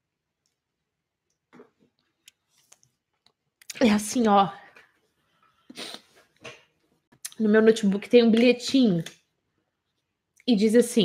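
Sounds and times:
woman sniffling: 0:05.7 - 0:06.2.

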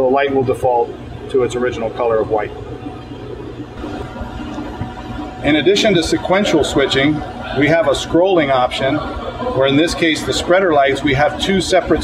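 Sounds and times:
faint steady hum: 0:00.0 - 0:12.0
low room rumble: 0:00.0 - 0:12.0.

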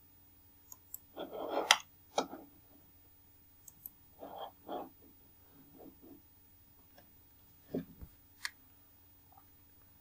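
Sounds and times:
computer mouse clicks: 0:00.7 - 0:01.9, 0:03.6 - 0:04.0.

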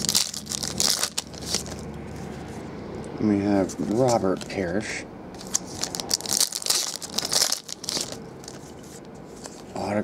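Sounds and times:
foil wrapper crinkling: 0:00.0 - 0:01.8, 0:05.4 - 0:08.8.

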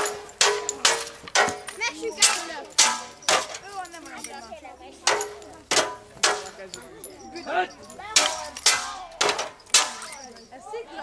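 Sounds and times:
weapons clashing against shields: 0:00.0 - 0:04.3, 0:05.0 - 0:06.7, 0:08.1 - 0:10.3.

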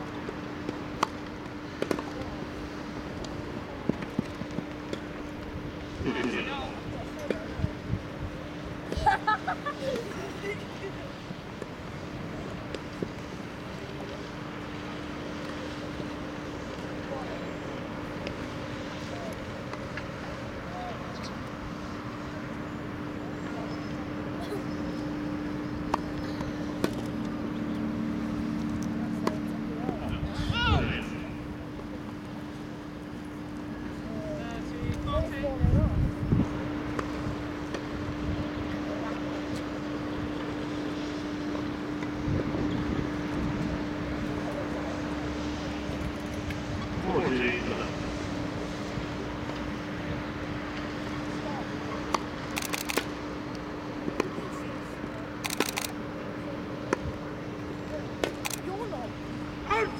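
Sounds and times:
constant low hum: 0:00.0 - 0:59.9.

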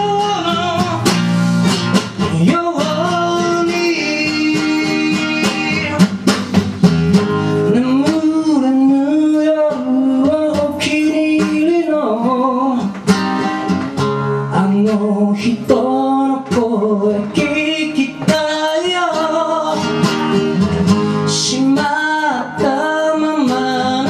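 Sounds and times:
acoustic guitar strummed and picked: 0:00.0 - 0:24.0.

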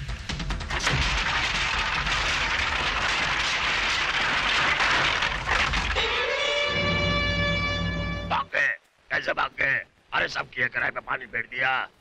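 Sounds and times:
bamboo poles clattering as they fall: 0:00.6 - 0:06.6.

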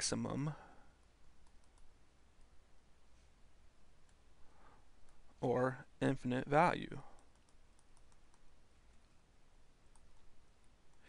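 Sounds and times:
stylus clicking on drawing tablet: 0:01.4 - 0:01.9, 0:07.1 - 0:09.1, 0:09.9 - 0:11.0.

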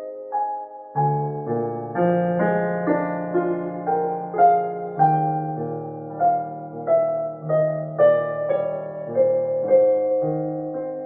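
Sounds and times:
digital piano playing slow piece: 0:00.0 - 0:11.0.

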